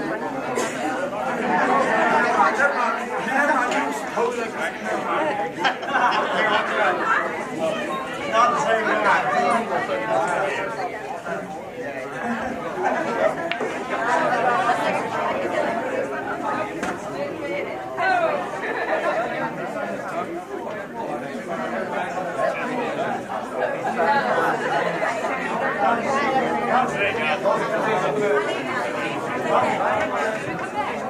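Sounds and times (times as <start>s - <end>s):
crowd chatter: 0.0s - 31.0s.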